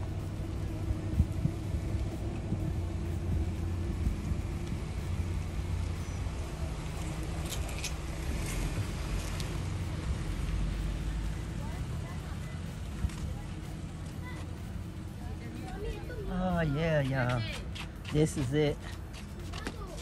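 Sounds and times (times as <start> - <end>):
wind buffeting microphone: 0.0 - 14.0.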